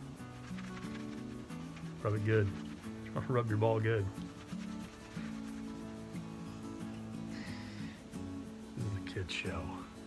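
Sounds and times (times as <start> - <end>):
cloth rag rubbing wax on wood: 0.0 - 7.3
background music with low beat: 0.0 - 10.0.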